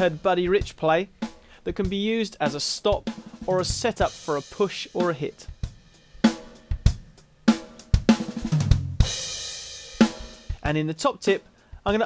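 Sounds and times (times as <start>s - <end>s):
drum hits: 0.0s - 10.8s.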